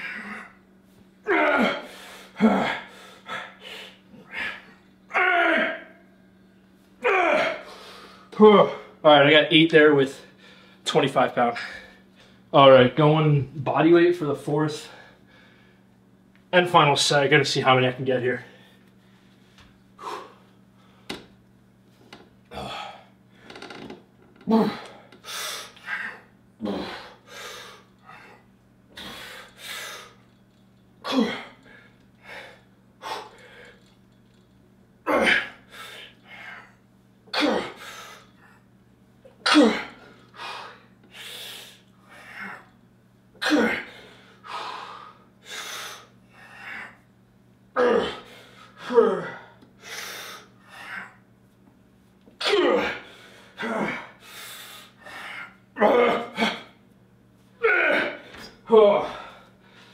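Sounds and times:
man breathing hard: 1.5s - 4.8s, 7.4s - 9.0s, 10.2s - 10.8s, 18.5s - 21.3s, 22.5s - 23.8s, 24.5s - 34.0s, 35.2s - 36.8s, 37.6s - 38.7s, 39.8s - 42.8s, 43.4s - 47.0s, 47.9s - 51.2s, 52.8s - 55.6s, 58.0s - 59.9s.

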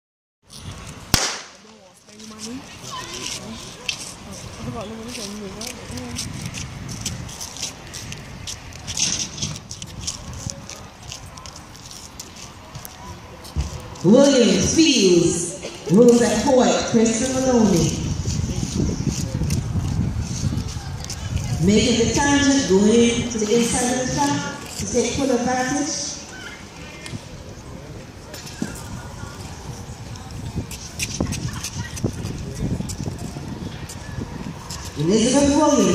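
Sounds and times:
starter's pistol shot with echo: 1.1s - 1.6s
steady low rumble: 13.8s - 25.4s.

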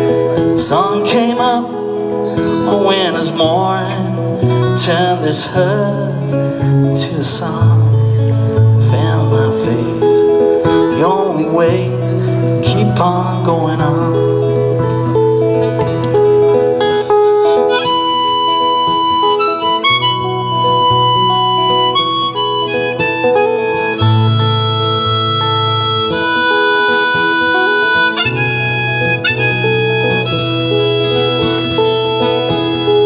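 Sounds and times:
strummed acoustic guitars: 0.0s - 33.0s
blues harmonica: 14.1s - 33.0s.

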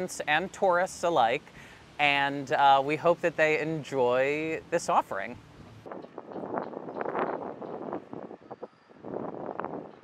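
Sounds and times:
wind buffeting microphone: 5.2s - 10.0s.

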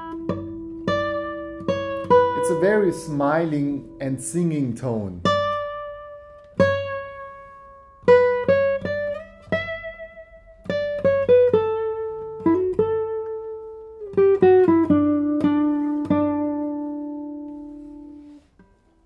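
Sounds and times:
classical guitar plucked melody: 0.0s - 19.0s.

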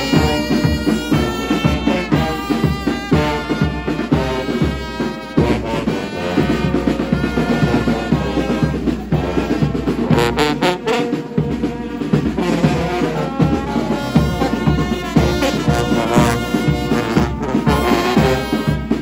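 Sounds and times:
marching brass band playing: 0.0s - 19.0s
steady drum beat: 0.0s - 19.0s.

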